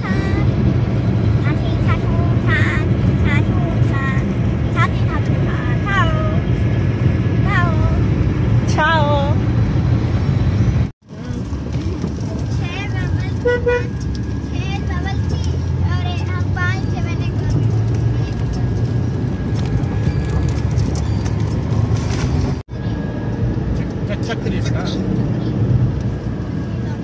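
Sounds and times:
car road and engine noise: 0.0s - 27.0s
car horn toot: 13.4s - 14.0s.

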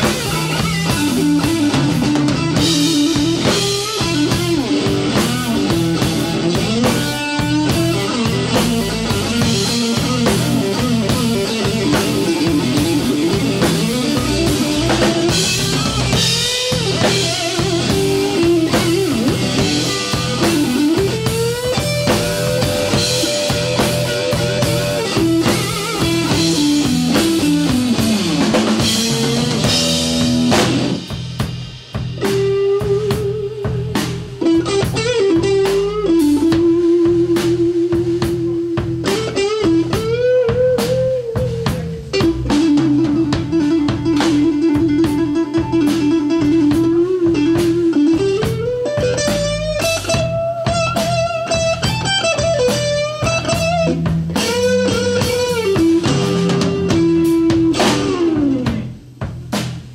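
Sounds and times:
electric guitar solo: 0.0s - 31.1s, 32.2s - 59.0s
bass: 0.0s - 59.9s
drum kit: 0.0s - 59.9s.

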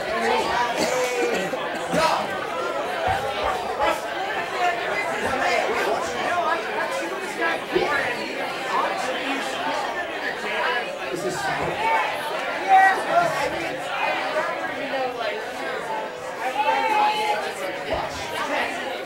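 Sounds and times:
crowd chatter in echoing room: 0.0s - 19.0s.

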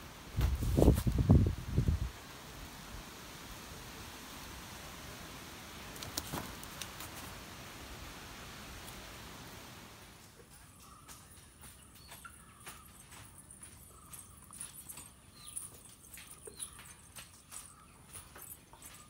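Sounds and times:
metal anklets jingling: 10.3s - 19.0s.

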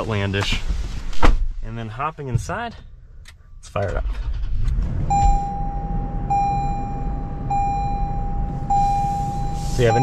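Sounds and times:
car engine starting and idling: 0.0s - 10.0s
dashboard warning chime: 5.1s - 10.0s.

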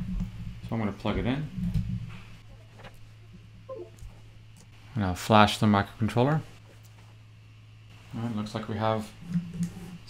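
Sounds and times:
low electrical hum: 0.0s - 10.0s
faint pitched sound: 3.7s - 4.0s.

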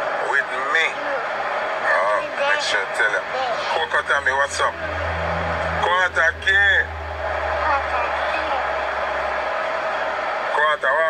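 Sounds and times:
low hum: 3.8s - 10.0s.

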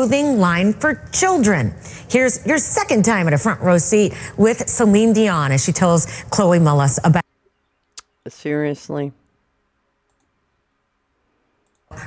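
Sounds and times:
faint computer mouse clicks: 10.1s - 10.3s, 11.6s - 11.9s.

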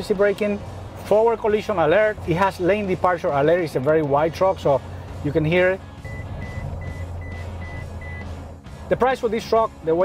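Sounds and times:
engine and road hum: 0.0s - 10.0s
short high alert beeps: 6.0s - 8.3s.

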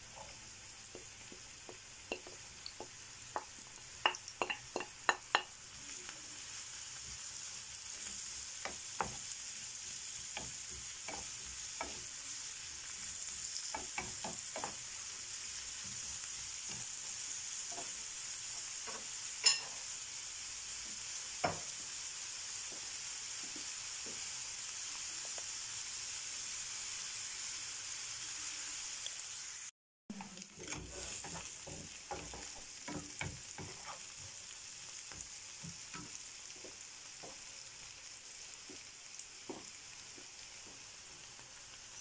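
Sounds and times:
vegetables sizzling in a frying pan: 0.0s - 42.0s.

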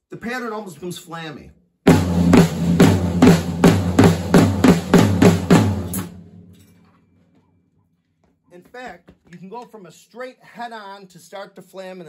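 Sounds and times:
drum kit groove on snare and tom: 1.9s - 6.4s
drums ringing out: 1.9s - 6.5s.

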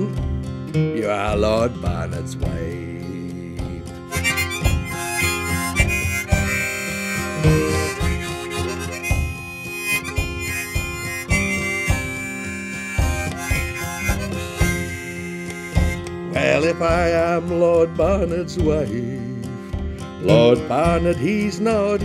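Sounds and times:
acoustic guitar plucking: 0.0s - 22.0s
sustained melody line: 0.0s - 22.0s.

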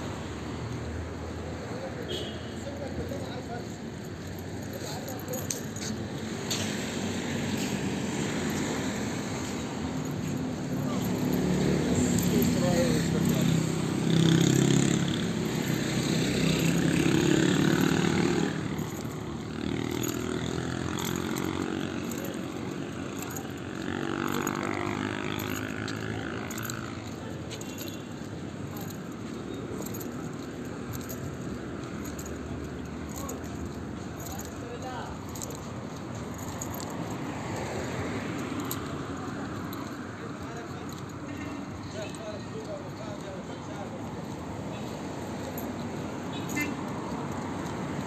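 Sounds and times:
road traffic hum: 0.0s - 48.0s
people talking: 11.9s - 14.4s, 34.3s - 35.2s, 40.2s - 44.9s.

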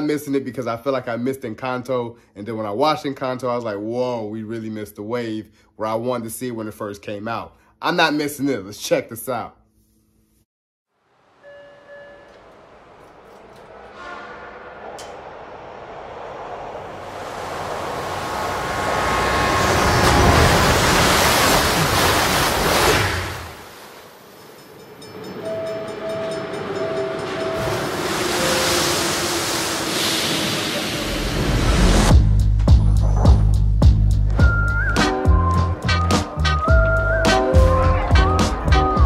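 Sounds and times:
speeding train rushing: 11.4s - 23.4s, 24.2s - 32.2s
train rumble: 11.8s - 22.1s, 24.5s - 34.0s
trailer soundtrack music: 12.1s - 17.4s, 31.4s - 39.0s.

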